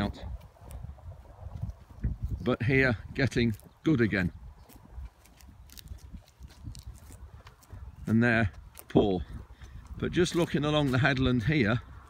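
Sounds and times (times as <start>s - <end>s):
footsteps crunching on straw: 0.0s - 12.0s
low rumble on microphone: 0.0s - 12.0s.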